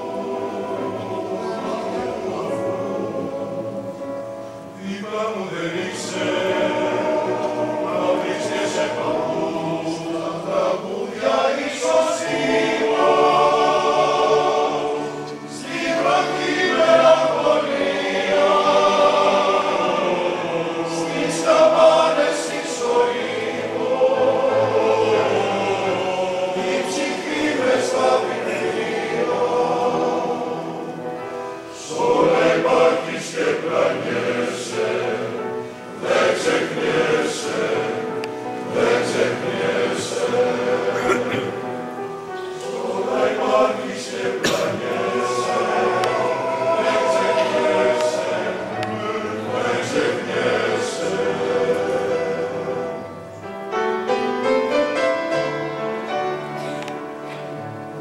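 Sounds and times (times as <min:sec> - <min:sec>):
male choir singing: 0:00.0 - 0:56.4.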